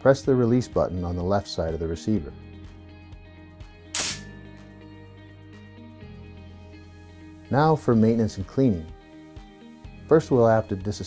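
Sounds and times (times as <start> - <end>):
background music: 0.0 - 11.0
shotgun bolt snapping closed: 4.0 - 4.3.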